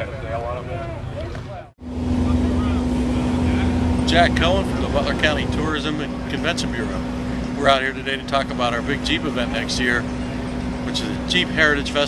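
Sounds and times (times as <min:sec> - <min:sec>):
vehicle engine idling: 0:01.8 - 0:12.0.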